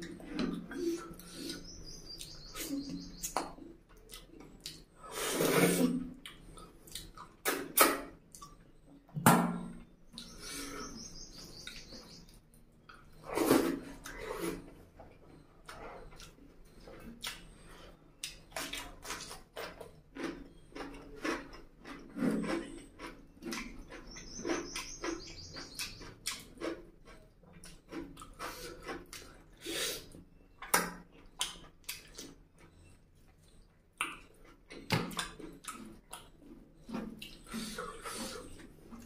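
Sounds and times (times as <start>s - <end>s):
chewing with wet mouth smacks: 0.0s - 4.9s, 6.0s - 8.8s, 15.1s - 39.0s.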